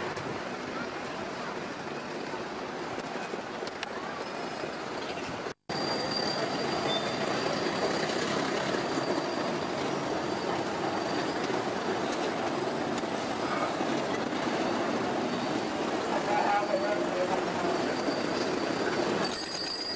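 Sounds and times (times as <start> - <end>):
city street traffic: 0.0 - 19.9.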